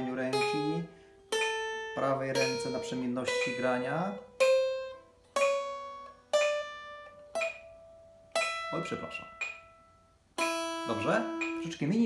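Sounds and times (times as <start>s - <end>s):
acoustic guitar single notes: 0.0s - 12.0s.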